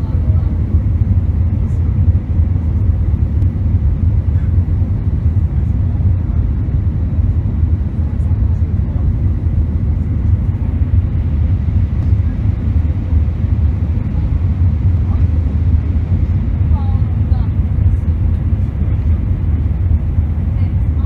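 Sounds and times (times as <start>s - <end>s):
airplane cabin roar: 0.0s - 21.0s.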